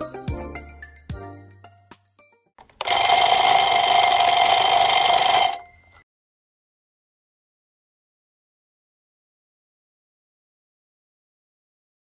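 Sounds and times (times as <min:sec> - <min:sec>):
timer alarm ringing: 0:02.8 - 0:06.0.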